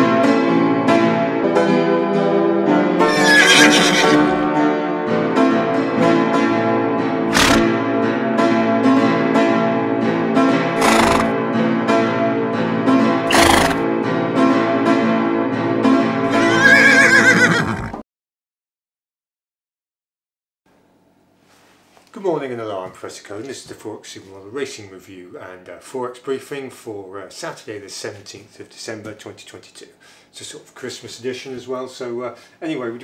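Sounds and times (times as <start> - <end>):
background music: 0.0 - 17.4
horse whinnying: 3.0 - 4.5, 7.3 - 7.7, 10.8 - 11.3, 13.3 - 13.8, 16.3 - 18.0.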